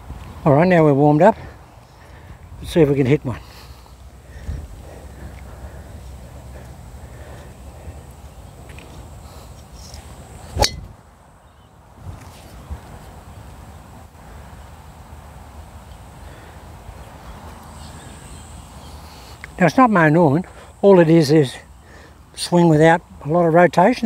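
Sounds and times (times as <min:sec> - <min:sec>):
wind rumble on microphone: 0:04.3 - 0:05.4, 0:11.8 - 0:14.4
golf club striking ball: 0:10.6 - 0:10.9.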